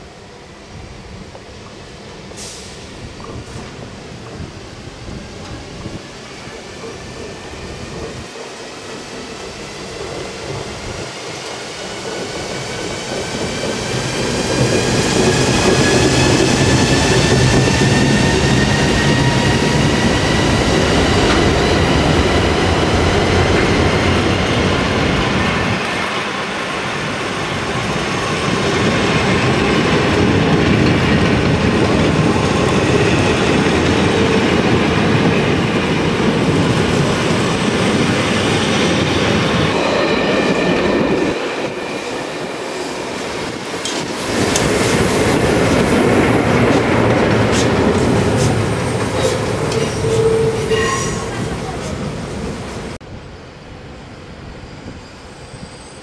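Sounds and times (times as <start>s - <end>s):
train wheels clacking on rails: 8.0s - 52.1s.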